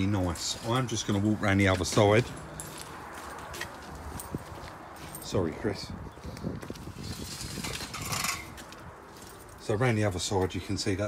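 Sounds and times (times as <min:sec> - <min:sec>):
footsteps on wet concrete: 0:00.0 - 0:05.4
scuffing rustle: 0:00.0 - 0:05.5.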